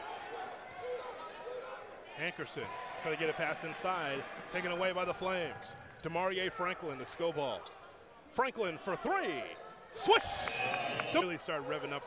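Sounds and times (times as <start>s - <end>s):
murmur of hall: 0.0s - 12.0s.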